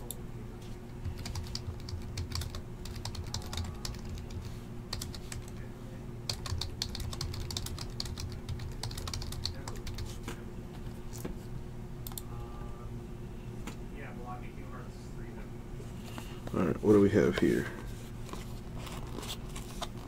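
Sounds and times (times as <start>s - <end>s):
steady low hum: 0.0s - 20.0s
typing on computer keyboard: 1.0s - 5.6s, 6.3s - 10.1s.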